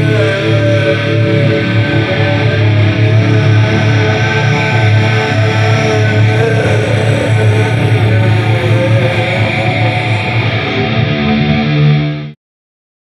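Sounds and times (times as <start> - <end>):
heavy metal backing track: 0.0 - 12.3
distorted electric guitar riff: 0.0 - 12.4.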